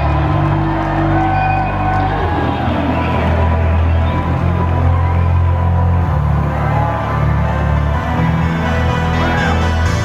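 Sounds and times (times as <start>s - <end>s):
deep synth bass notes: 0.0s - 10.0s.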